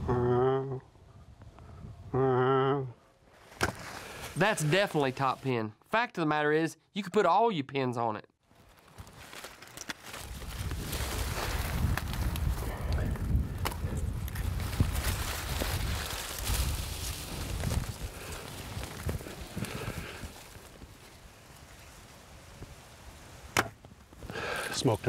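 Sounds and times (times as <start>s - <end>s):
footsteps through dry stalks: 8.4s - 23.2s
stalks rustling against clothing: 8.5s - 12.6s.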